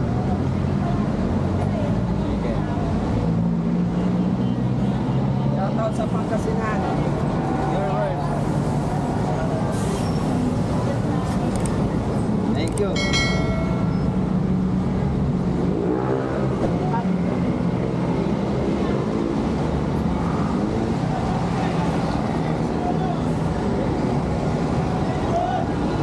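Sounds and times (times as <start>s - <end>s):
voices in background: 0.0s - 14.1s.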